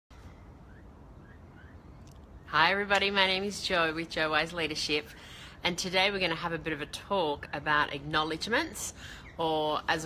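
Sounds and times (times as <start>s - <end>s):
bird chirps: 9.0s - 9.8s.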